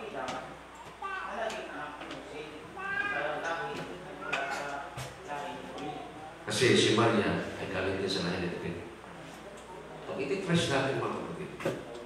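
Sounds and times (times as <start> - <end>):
man speaking off microphone: 1.9 - 8.9, 10.1 - 12.0.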